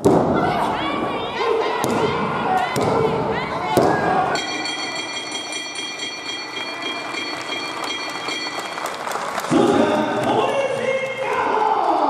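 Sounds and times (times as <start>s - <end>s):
shouting voices: 0.2s - 5.3s.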